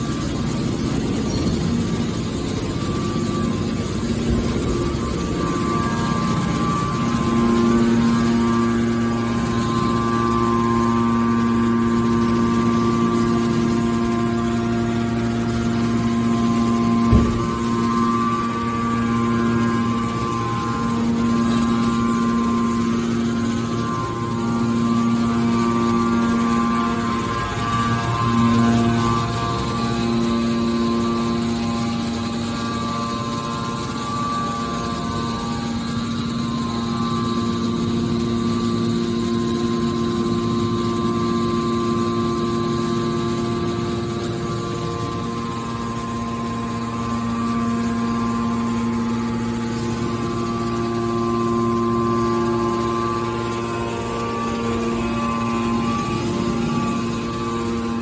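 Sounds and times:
hydraulic pump motor humming: 0.0 - 58.0.

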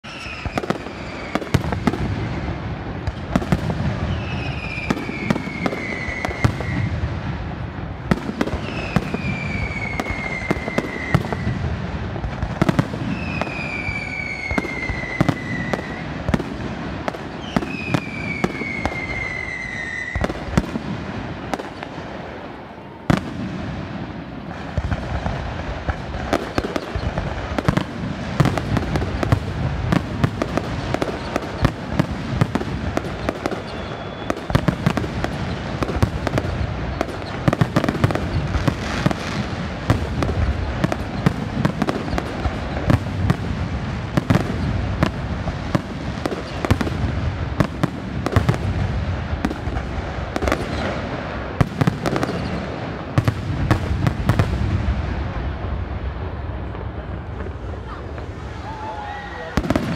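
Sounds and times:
firework bangs and crackling: 0.0 - 59.9
whistling fireworks: 0.0 - 59.9.

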